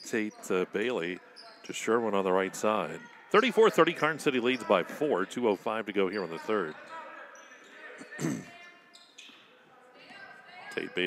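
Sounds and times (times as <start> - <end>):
sneakers squeaking on hardwood: 1.1 - 1.8, 6.0 - 10.2.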